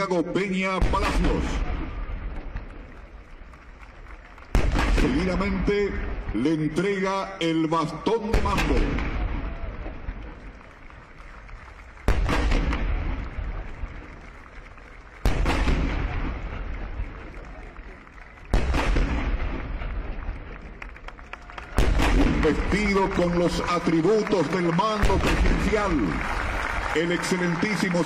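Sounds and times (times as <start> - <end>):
cannon shots with rolling echo: 0.0 - 20.9, 21.6 - 27.8.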